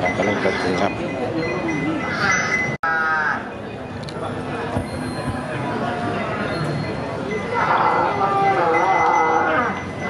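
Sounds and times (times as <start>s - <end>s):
buffalo mooing: 7.5s - 9.8s.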